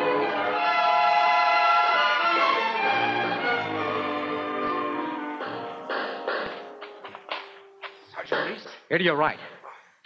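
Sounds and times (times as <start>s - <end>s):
orchestral music: 0.0s - 7.9s.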